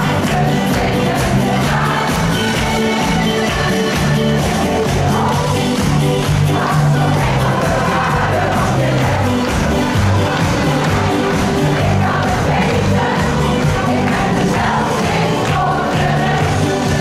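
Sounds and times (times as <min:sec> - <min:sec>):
choir singing upbeat song: 0:00.0 - 0:17.0.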